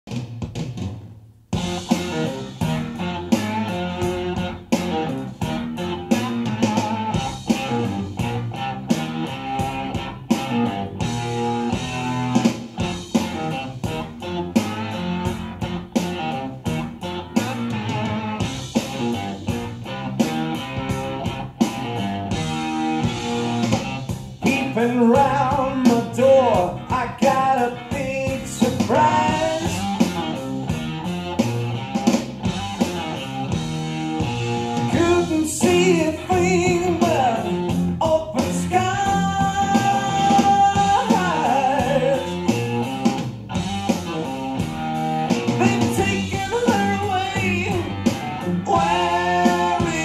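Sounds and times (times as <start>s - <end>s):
rock music over loudspeakers: 0.1s - 50.0s.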